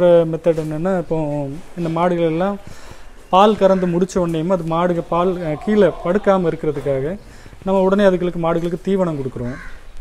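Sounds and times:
man talking: 0:00.0 - 0:09.7
crow cawing: 0:05.2 - 0:07.6, 0:09.4 - 0:10.0.

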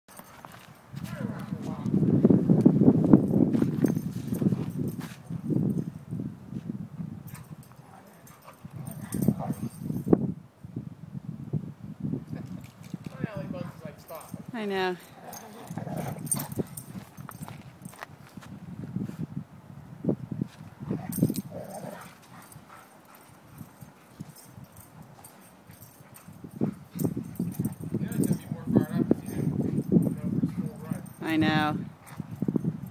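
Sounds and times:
scuffling paws in snow: 0:03.5 - 0:05.4
dogs play-growling: 0:07.3 - 0:09.9, 0:15.0 - 0:17.6, 0:20.8 - 0:28.5.

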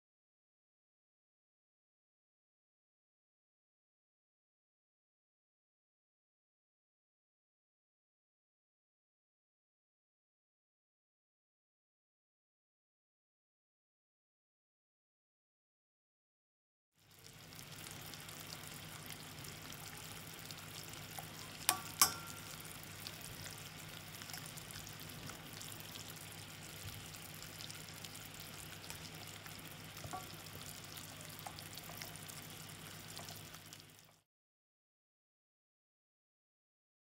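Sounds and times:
syrup boiling in a saucepan: 0:17.0 - 0:34.2.

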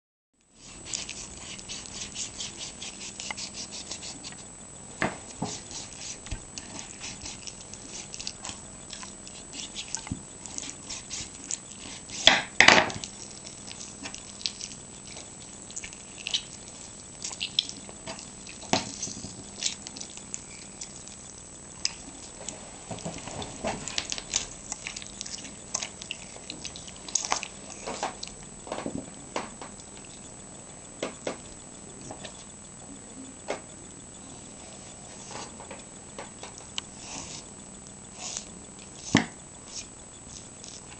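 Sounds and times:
knife scraping meat from bone: 0:00.6 - 0:04.4
knife scraping meat off bone: 0:00.6 - 0:04.5, 0:05.4 - 0:21.3.

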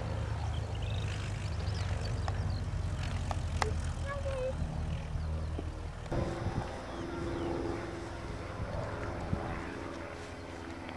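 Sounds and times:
propeller aircraft engine drone: 0:00.0 - 0:10.9.

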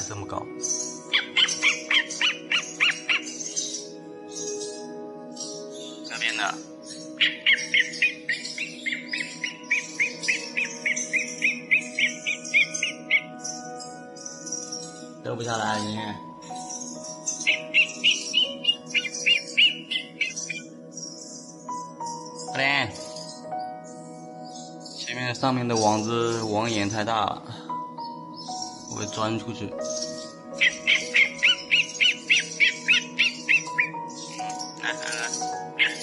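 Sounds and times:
young owl calling: 0:00.0 - 0:15.0, 0:15.8 - 0:21.2, 0:29.8 - 0:36.0
background music: 0:00.0 - 0:36.0.

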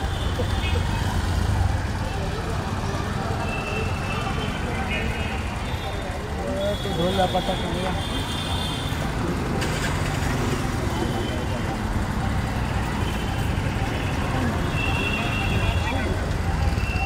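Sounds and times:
faint voices: 0:00.0 - 0:17.0
road traffic rumble: 0:00.0 - 0:17.0.

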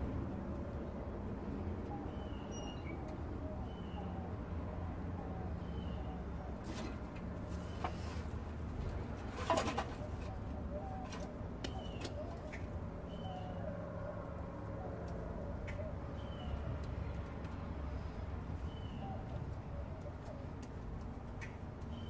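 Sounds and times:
birds calling: 0:05.1 - 0:08.4, 0:09.2 - 0:16.8.

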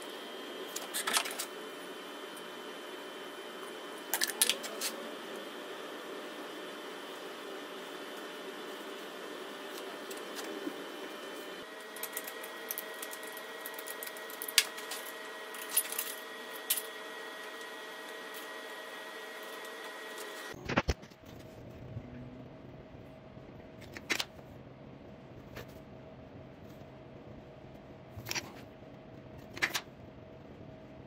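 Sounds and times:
mechanical hum: 0:00.0 - 0:31.0.

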